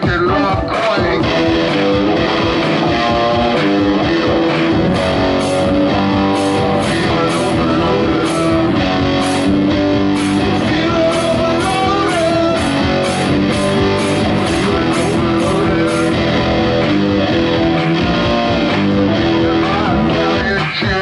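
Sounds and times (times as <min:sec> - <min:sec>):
bass guitar: 0:00.0 - 0:21.0
drums and cymbals: 0:00.0 - 0:21.0
electric guitars sustained notes: 0:00.0 - 0:21.0.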